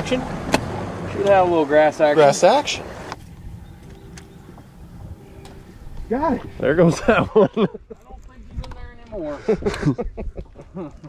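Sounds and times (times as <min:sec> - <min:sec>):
boat motor rumbling: 0:00.0 - 0:08.8.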